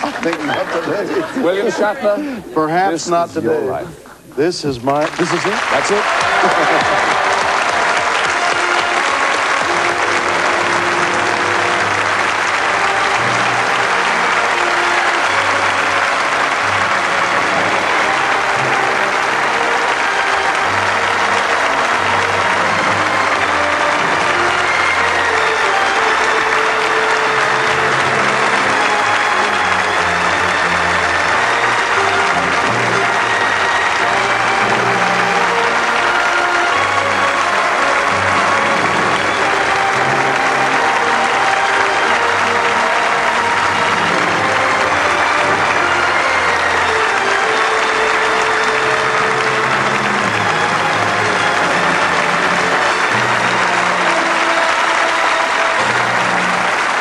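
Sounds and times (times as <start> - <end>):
audience applauding: 0.0 - 3.8, 4.4 - 57.0
closing theme music: 4.4 - 57.0.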